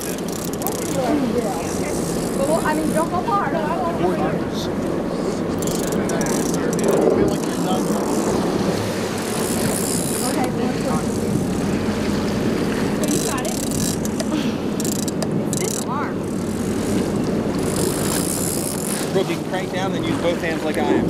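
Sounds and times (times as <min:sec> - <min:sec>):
boat engines running: 0:00.0 - 0:21.0
water and wind: 0:00.0 - 0:21.0.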